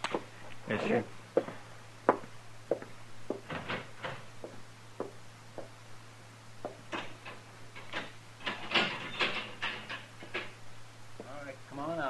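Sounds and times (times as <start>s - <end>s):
low recording hum: 0.0s - 12.0s
footsteps on wooden floor: 1.4s - 5.8s, 6.6s - 6.9s
jail door clicks and knocks: 6.9s - 10.6s.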